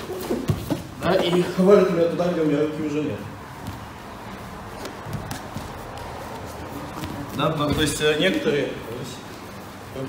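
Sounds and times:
bodies shuffling on mats: 0.0 - 1.9, 3.3 - 10.0.

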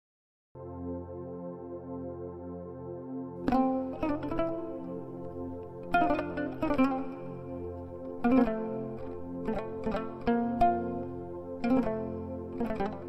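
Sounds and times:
plucked string melody: 3.4 - 13.0.

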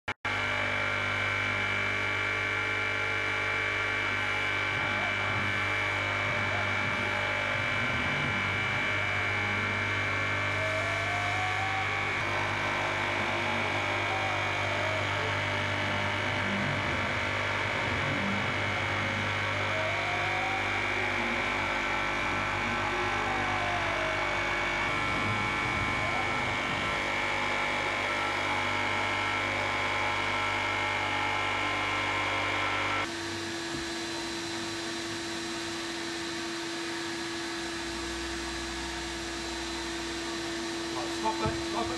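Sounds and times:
foam cutting machine whine: 0.3 - 41.9
motor tone rising and falling: 0.4 - 41.9.

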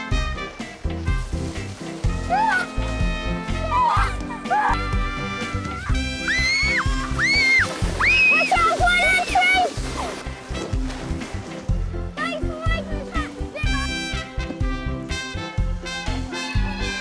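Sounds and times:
background music: 0.0 - 17.0
child squealing: 3.6 - 4.9.

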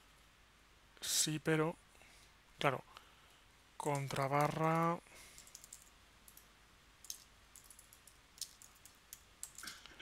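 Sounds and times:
computer keyboard typing: 3.8 - 9.8.

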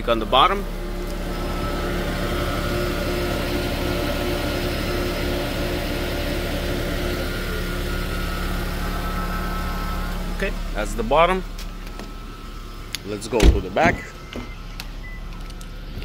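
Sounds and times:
hybrid car idling hum: 0.0 - 16.0
faint whine tones: 7.1 - 16.0.

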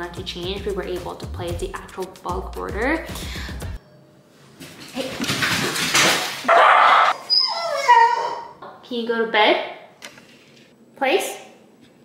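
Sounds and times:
dog barking: 6.5 - 7.1
dog whining: 6.5 - 8.6.

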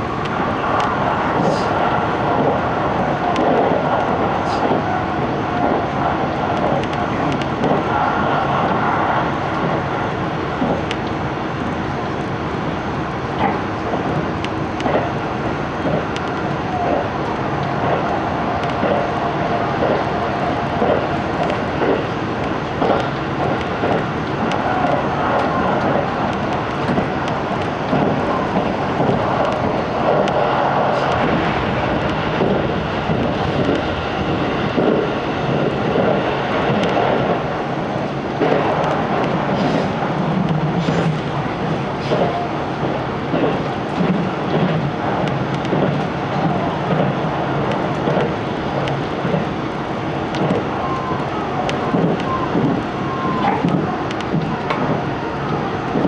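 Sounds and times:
train wheels on rail rumble: 0.0 - 56.0.

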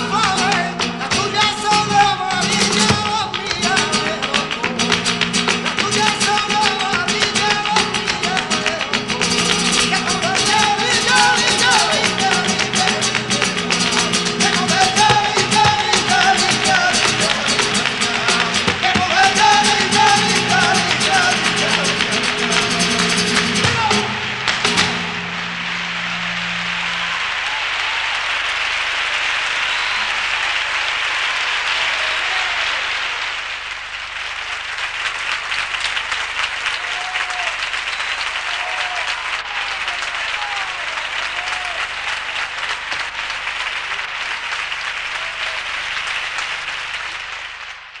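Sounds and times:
audience applause: 0.0 - 48.0
hand-claps: 0.0 - 48.0
person singing: 5.8 - 24.2
strummed flamenco guitar chord: 9.1 - 27.1
crowd shouts: 25.4 - 33.4, 36.7 - 37.6, 38.4 - 42.0.

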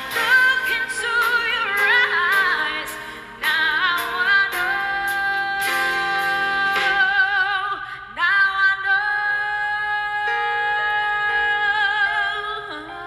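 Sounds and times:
live band accompaniment: 0.0 - 7.6
woman singing with vibrato: 0.0 - 13.0.

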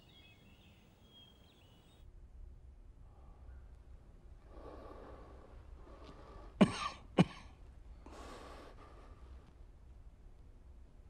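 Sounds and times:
heavy breathing: 4.4 - 6.6, 8.0 - 9.5
man coughing: 6.6 - 7.6.

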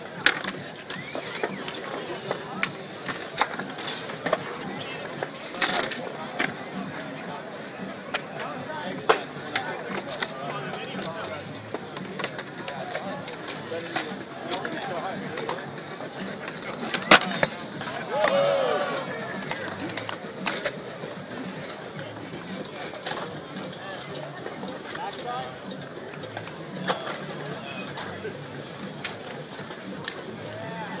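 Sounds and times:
crowd chatter: 0.0 - 31.0
skateboard clacking on concrete: 0.0 - 31.0
onlookers shouting: 17.9 - 19.6.

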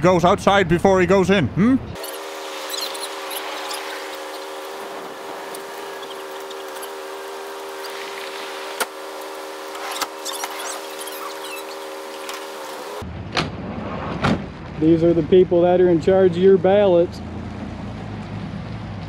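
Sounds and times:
mechanical hum: 0.1 - 15.4.

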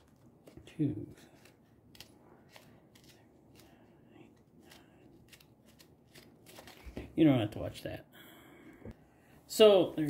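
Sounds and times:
fingertip flicking paper pleats: 1.2 - 3.8, 4.6 - 7.0.

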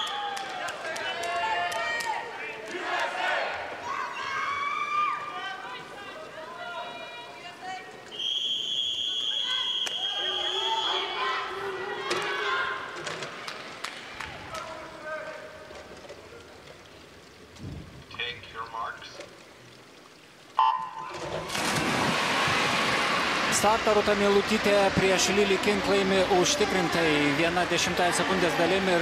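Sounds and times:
loud crowd noise: 0.0 - 16.0, 21.7 - 29.0
high-pitched whistle: 8.1 - 11.1
splash of diving: 20.8 - 23.9.

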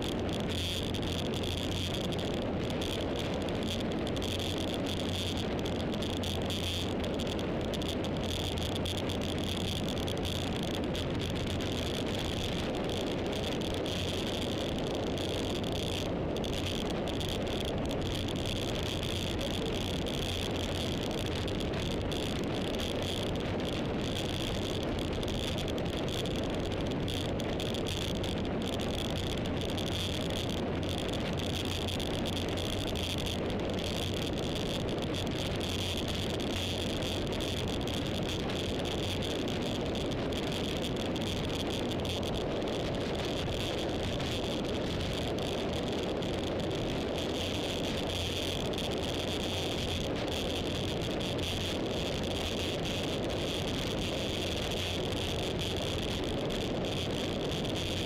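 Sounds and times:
constant high hiss: 0.0 - 58.0
road and wind noise: 0.0 - 58.0.

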